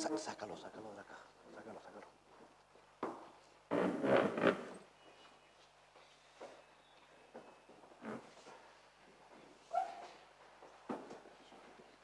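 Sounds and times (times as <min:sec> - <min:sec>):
short high squeak: 0:09.7 - 0:10.1.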